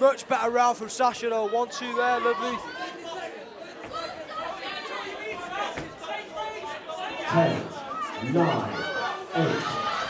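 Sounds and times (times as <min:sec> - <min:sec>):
spectators chattering and calling: 0:00.0 - 0:10.0.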